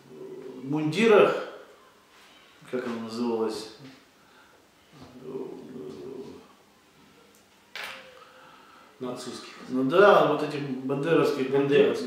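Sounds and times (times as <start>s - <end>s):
man humming hesitantly: 5.1s - 6.6s.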